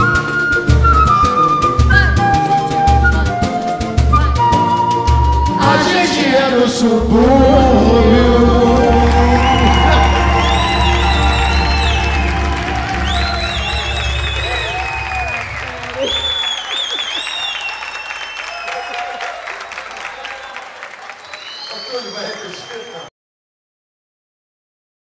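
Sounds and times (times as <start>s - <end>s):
samba band playing: 7.0s - 17.0s
audience applauding and cheering: 7.0s - 23.1s.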